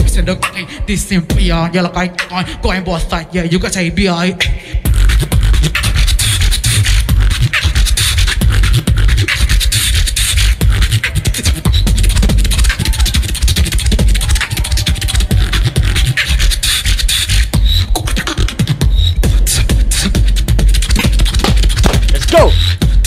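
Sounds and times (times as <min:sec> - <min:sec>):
amplified beatboxing: 0:00.0 - 0:23.0.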